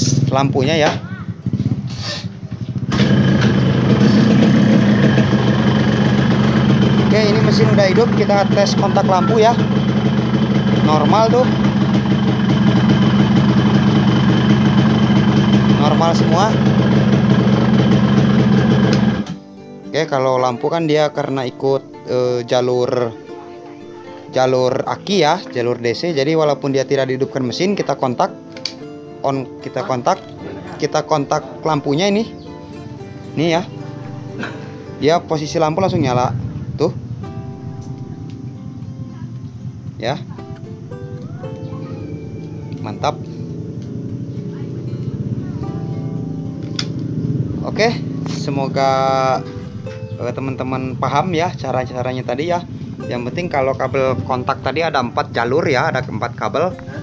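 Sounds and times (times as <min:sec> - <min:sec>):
motorcycle engine idling: 0:00.0 - 0:19.4, 0:29.8 - 0:57.0.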